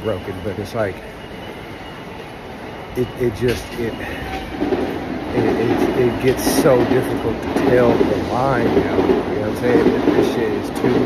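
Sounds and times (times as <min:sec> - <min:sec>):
train running: 0:00.0 - 0:11.0.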